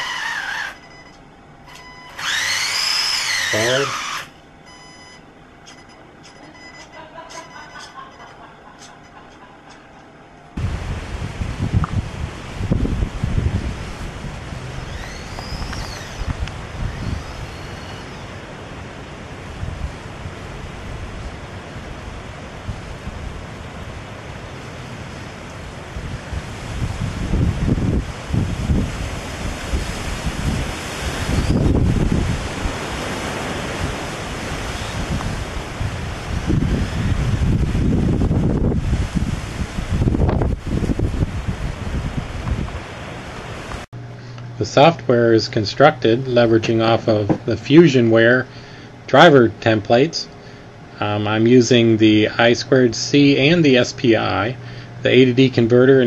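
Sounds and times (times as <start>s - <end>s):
wind buffeting microphone: 10.6s - 43.9s.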